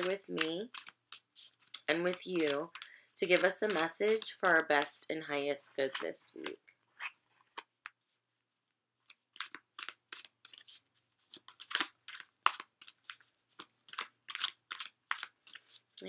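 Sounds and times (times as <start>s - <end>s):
cards being shuffled: 0.0s - 4.6s, 9.1s - 16.0s.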